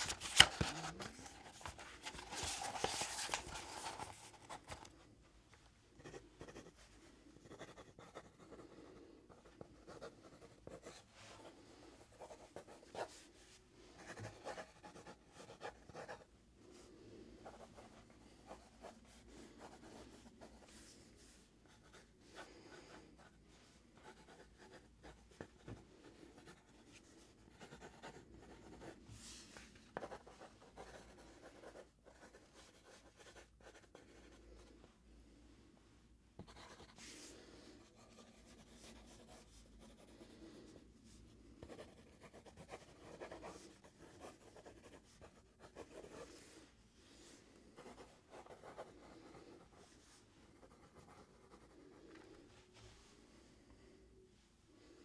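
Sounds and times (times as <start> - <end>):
pencil scratching on paper: 0.0 - 4.9, 6.0 - 13.3, 13.9 - 16.3, 17.4 - 21.0, 24.0 - 34.7, 36.4 - 40.8, 41.6 - 46.6, 47.8 - 51.9.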